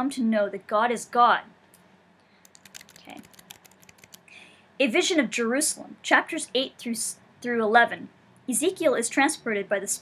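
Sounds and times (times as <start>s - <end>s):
keys tapping clicks: 2.5s - 4.2s.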